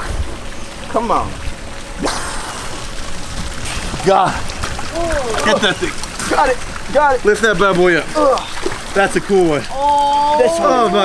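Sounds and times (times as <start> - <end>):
water splashing and sloshing: 0.0 - 11.0.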